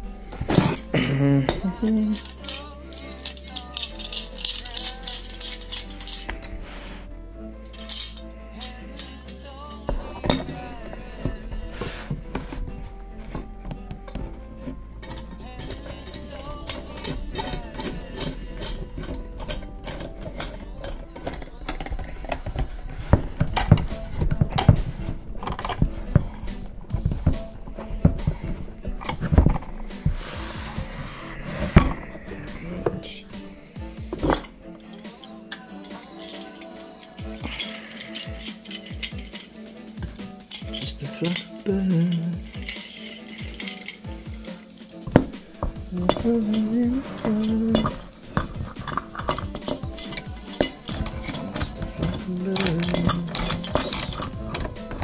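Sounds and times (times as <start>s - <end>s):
metal clamps clinking and knocking: 0.0s - 6.6s, 7.6s - 55.0s
background music: 0.0s - 55.0s.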